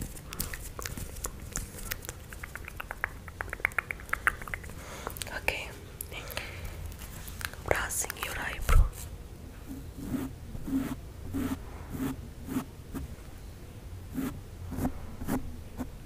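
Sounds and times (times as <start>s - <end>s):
soft rhythmic puffs: 0.0s - 9.1s
mouth clicks: 0.3s - 5.3s
breathy whispers: 4.1s - 9.0s.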